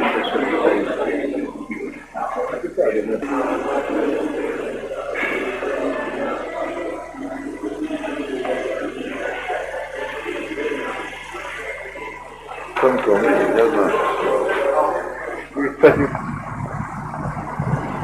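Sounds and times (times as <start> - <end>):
background chatter of voices: 0.0 - 18.0
hall noise: 0.0 - 18.0.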